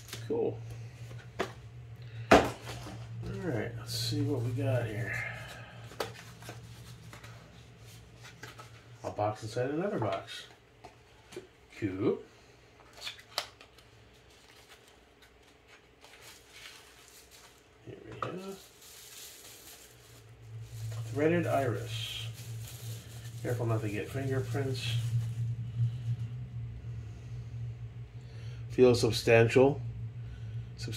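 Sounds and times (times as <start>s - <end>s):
plastic bag rustling: 0.0s - 0.3s, 2.5s - 9.2s, 13.9s - 26.0s
steady low hum: 0.0s - 30.9s
cardboard and paper rubbing: 4.8s - 8.9s, 18.3s - 25.4s.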